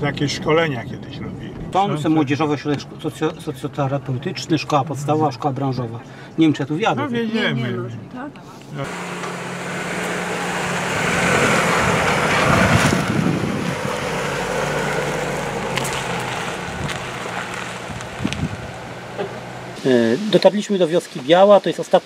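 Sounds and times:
car engine hum passing: 8.8s - 19.8s
tyre noise: 10.8s - 19.8s.

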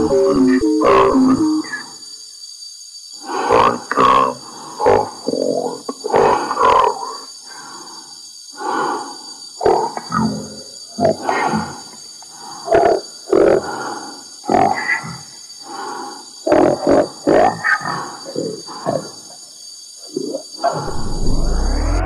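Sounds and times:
growling voice-like electronic sounds: 0.0s - 1.8s, 20.2s - 22.0s
faint high whine: 0.0s - 2.0s, 20.9s - 22.0s
deep low rumble: 20.9s - 22.0s
distorted electronic bursts: 20.9s - 22.0s.

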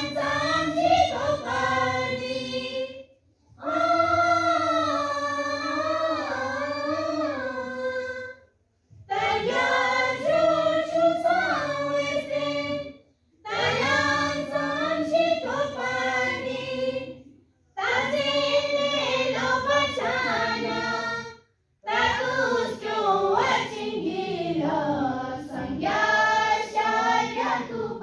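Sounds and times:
students singing together: 0.0s - 8.4s, 9.0s - 28.0s.

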